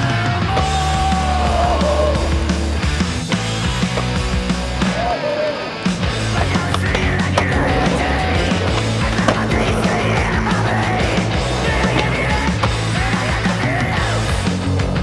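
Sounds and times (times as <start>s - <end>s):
heavy rock music: 0.0s - 15.0s
skateboard wheels rolling on asphalt: 1.3s - 15.0s
skateboard clacks: 3.4s - 15.0s.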